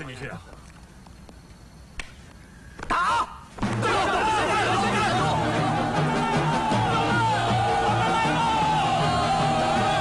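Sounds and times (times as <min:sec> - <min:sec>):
man shouting: 0:02.9 - 0:10.0.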